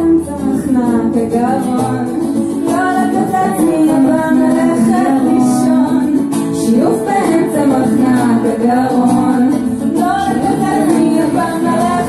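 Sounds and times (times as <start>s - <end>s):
electric guitar: 0.0s - 12.0s
woman singing: 0.0s - 12.0s.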